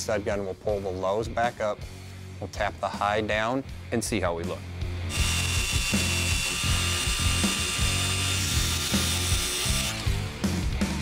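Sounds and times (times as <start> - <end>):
power tool whining: 5.1 - 10.3.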